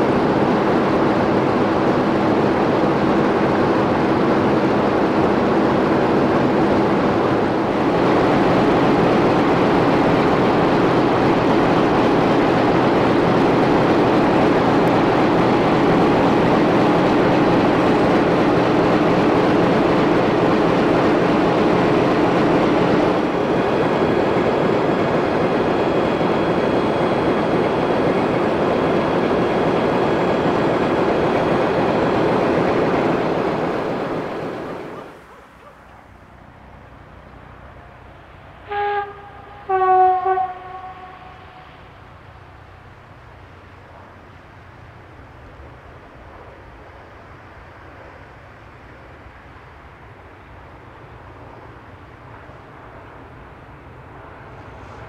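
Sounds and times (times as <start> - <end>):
diesel locomotive engine drone: 0.0 - 55.0
train horn blasts: 38.6 - 41.6.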